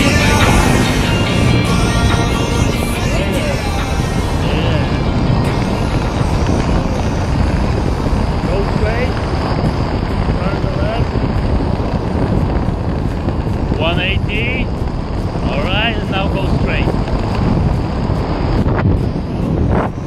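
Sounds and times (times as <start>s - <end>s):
faint voices: 0.0s - 9.3s
wind rushing over microphone: 0.0s - 20.0s.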